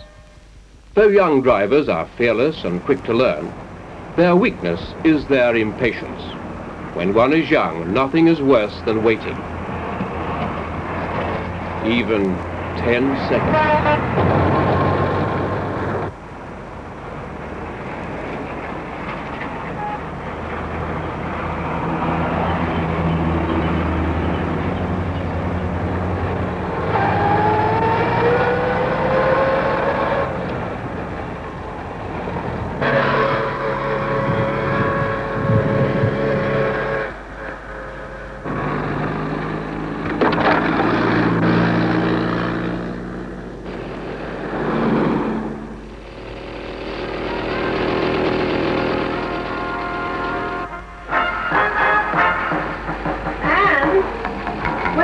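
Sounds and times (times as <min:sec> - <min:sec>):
car engines accelerating: 0:01.5 - 0:55.0.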